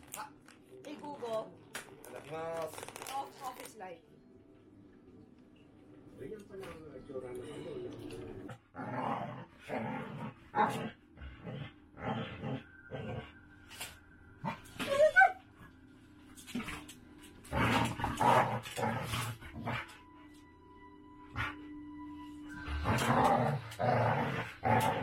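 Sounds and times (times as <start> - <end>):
dogs growling: 7.9 - 13.4, 16.5 - 20.1, 21.3 - 21.7, 22.5 - 25.0.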